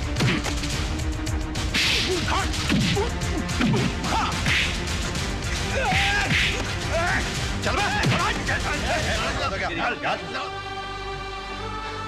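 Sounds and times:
whip-like hit cracks: 1.6s - 4.9s.

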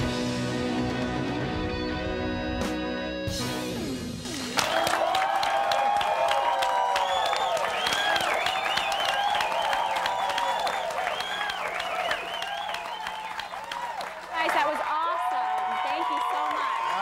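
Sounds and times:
audience applauding: 4.3s - 17.0s.

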